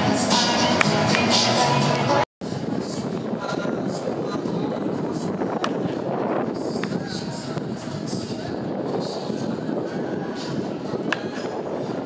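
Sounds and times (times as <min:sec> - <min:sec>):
stadium crowd voices: 0:00.0 - 0:12.0
baseball bat hitting ball: 0:05.6 - 0:06.0, 0:06.8 - 0:07.7, 0:11.0 - 0:11.5.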